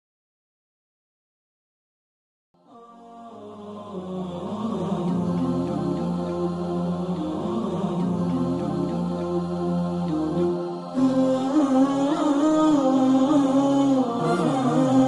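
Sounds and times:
wordless vocal chanting: 2.6s - 15.0s
low drone: 3.2s - 15.0s.

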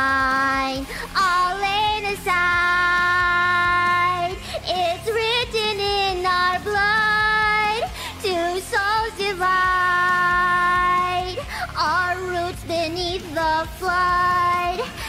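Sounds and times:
music backing track: 0.0s - 15.0s.

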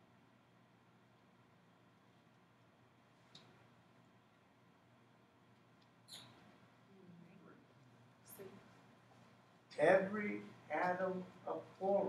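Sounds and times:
faint high-pitched hiss: 0.0s - 12.0s.

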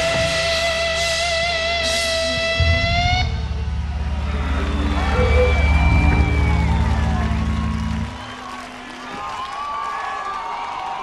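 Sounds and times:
heavy rock band playing: 0.0s - 8.1s.

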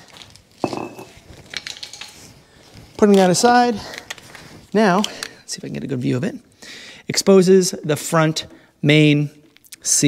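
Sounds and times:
metal parts and tools clinking: 0.6s - 2.4s.

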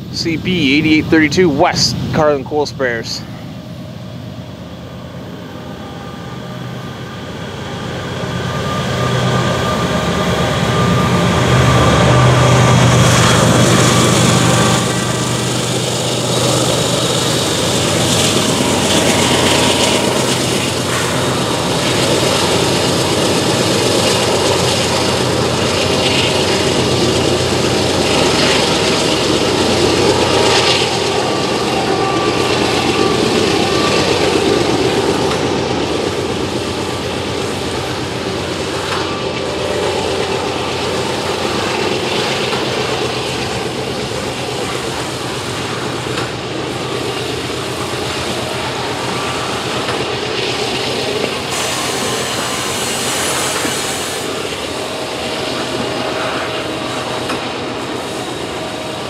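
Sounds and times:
diesel locomotive engines droning: 0.0s - 59.0s
train cars rumbling on rails: 0.0s - 59.0s.

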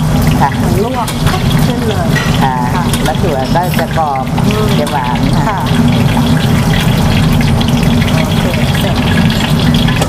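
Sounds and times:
gas burner roar: 0.0s - 10.0s
hot oil sizzling: 0.0s - 10.0s.

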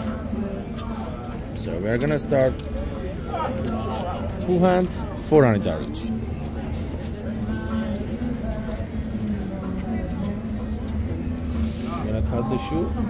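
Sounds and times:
distant chatter of voices: 0.0s - 13.0s.

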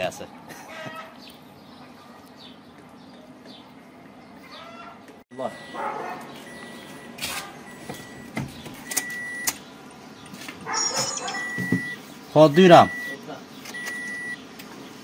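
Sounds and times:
dashboard warning chime beeping: 5.4s - 5.8s, 6.4s - 9.5s, 10.6s - 13.2s, 13.8s - 14.4s.

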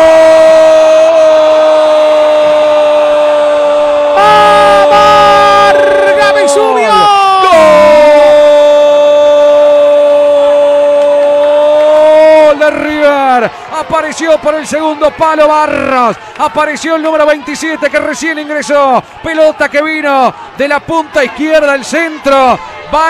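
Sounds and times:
lower voice: 4.1s - 8.2s
commentator shouting goal: 4.1s - 23.0s.

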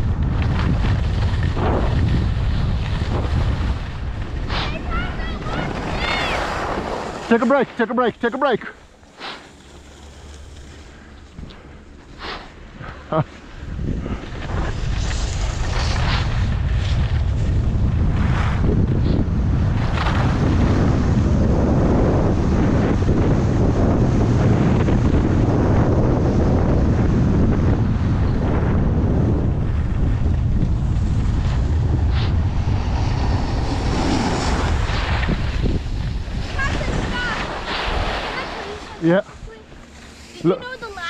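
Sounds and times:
wind buffeting microphone: 0.0s - 41.0s.

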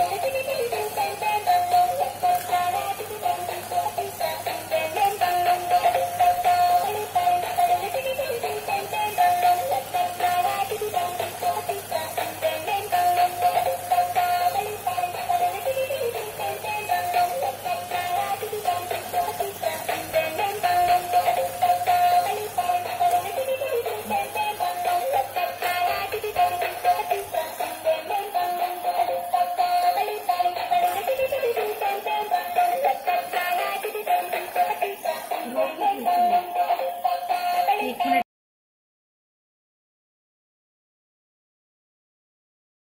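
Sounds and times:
toy electronic tune: 0.0s - 38.2s.

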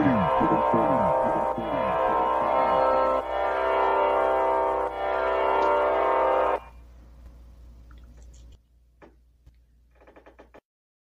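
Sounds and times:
droning music chord: 0.0s - 6.8s.

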